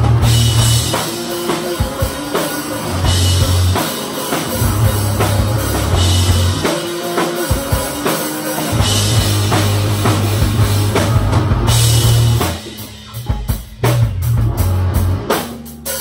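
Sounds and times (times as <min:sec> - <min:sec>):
distorted electric guitars: 0:00.0 - 0:16.0
drum kit: 0:00.0 - 0:16.0.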